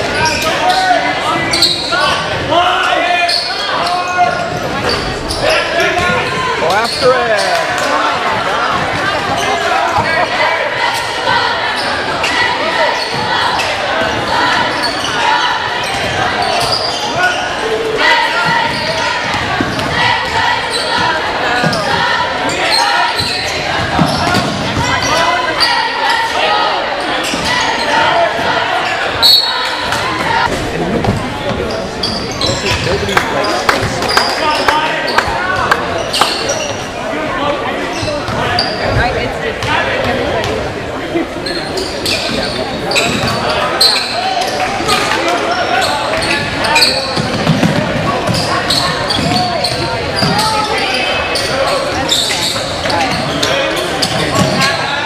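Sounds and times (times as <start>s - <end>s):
voices and shouts: 0.0s - 55.0s.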